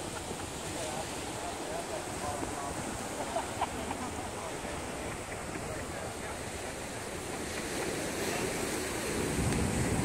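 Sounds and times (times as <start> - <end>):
ocean waves washing: 0.0 - 10.0
wind on microphone: 0.0 - 10.0.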